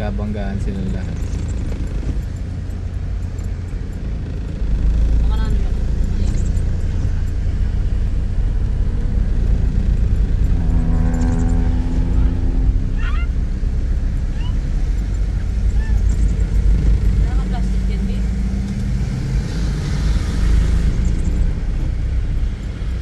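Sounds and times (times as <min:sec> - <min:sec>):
car engine and tyre rumble: 0:00.0 - 0:23.0.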